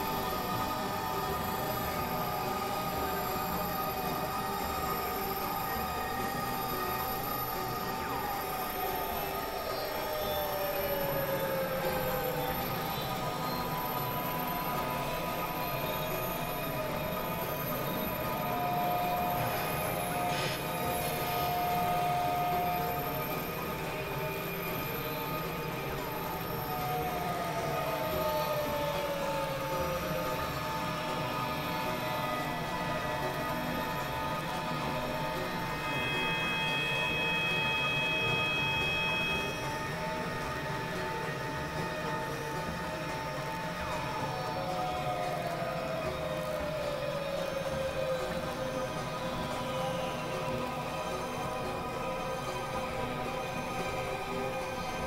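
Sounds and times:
high tone sliding downward: 0:07.5 - 0:55.0
electronic drone music: 0:15.0 - 0:49.6
brief steady tone: 0:34.9 - 0:40.7.

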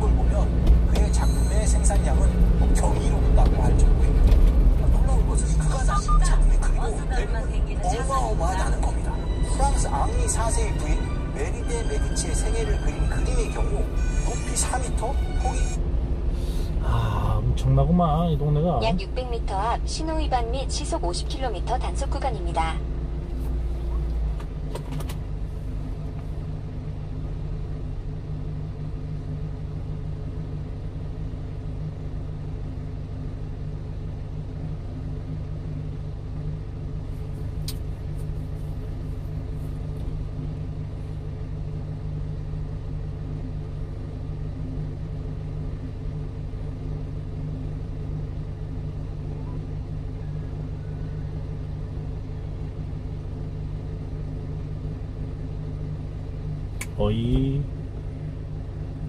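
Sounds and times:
truck engine idling: 0:00.0 - 0:59.0.

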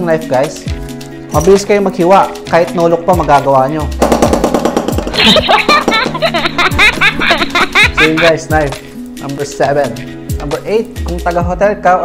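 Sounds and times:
background music: 0:00.0 - 0:12.0
laughter: 0:05.2 - 0:08.4.

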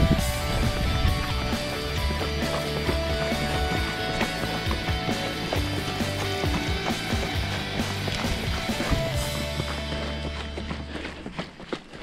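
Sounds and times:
background music with bass: 0:00.0 - 0:11.0
clopping percussive beat: 0:00.0 - 0:11.0.

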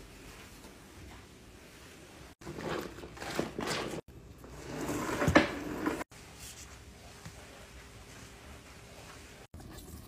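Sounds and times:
mop spinning in wringer bucket: 0:02.4 - 0:06.0.

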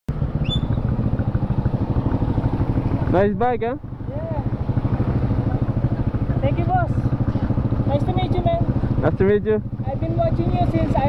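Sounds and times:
high chirp: 0:00.4 - 0:00.9.

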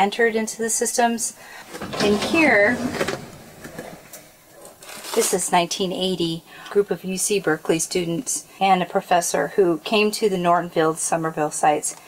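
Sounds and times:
drawer sliding open: 0:01.6 - 0:04.2
plastic bags rustling: 0:01.6 - 0:05.5.

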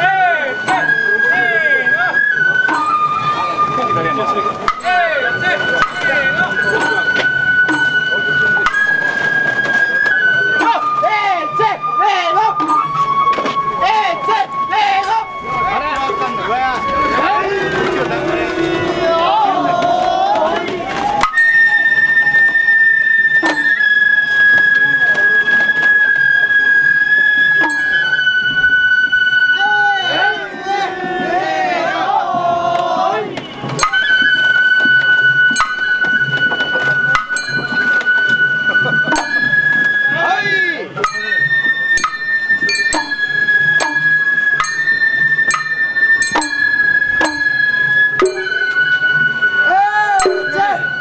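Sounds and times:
bamboo flute holding high note: 0:00.0 - 0:32.4, 0:33.4 - 0:51.0
sharp strikes: 0:04.7 - 0:05.0, 0:06.8 - 0:09.0, 0:23.4 - 0:23.9, 0:42.0 - 0:49.0, 0:50.2 - 0:51.0
small hand gong strikes: 0:43.8 - 0:47.6, 0:48.2 - 0:48.9, 0:50.2 - 0:50.8.

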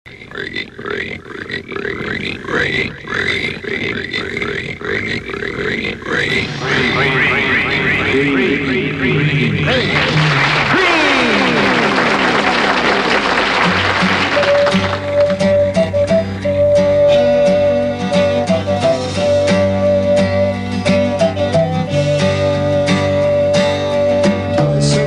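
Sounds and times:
voice making rising calls: 0:00.1 - 0:24.2
band bass notes: 0:06.3 - 0:13.0
studio audience applause: 0:09.4 - 0:15.6.

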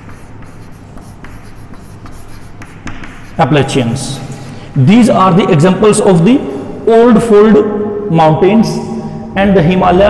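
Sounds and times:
chalk writing on chalkboard: 0:00.0 - 0:04.5.

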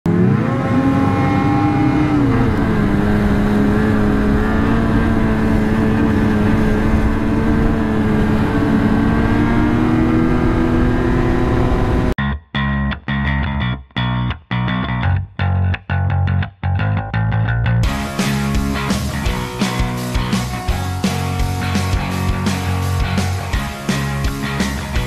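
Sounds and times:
snowmobile engine running: 0:00.1 - 0:12.2, 0:17.8 - 0:25.0.

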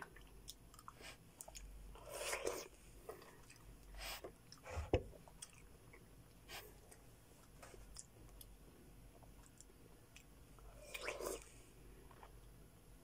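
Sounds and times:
chewing melon: 0:00.0 - 0:06.6, 0:09.2 - 0:12.4.

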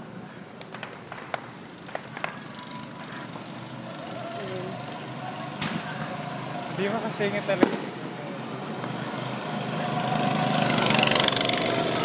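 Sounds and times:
faint voices: 0:00.0 - 0:12.0
steady outdoor hum: 0:00.0 - 0:12.0.

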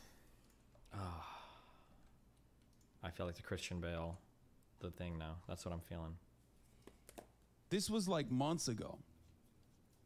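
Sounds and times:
man sighing: 0:00.8 - 0:02.1.

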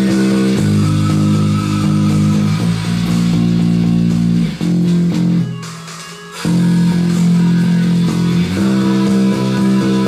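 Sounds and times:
electric bass long low notes: 0:00.0 - 0:05.5, 0:06.4 - 0:10.0
power metal band: 0:00.0 - 0:10.0.

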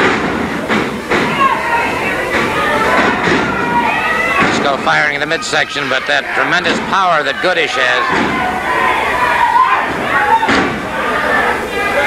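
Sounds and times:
crowd yelling: 0:00.0 - 0:12.0.

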